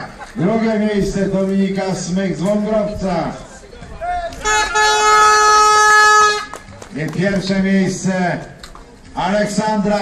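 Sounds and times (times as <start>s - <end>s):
air horn blast: 4.4s - 6.5s.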